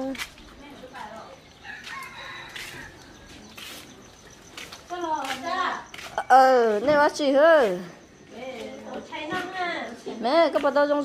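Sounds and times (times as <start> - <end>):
rooster crowing: 1.6 - 3.4.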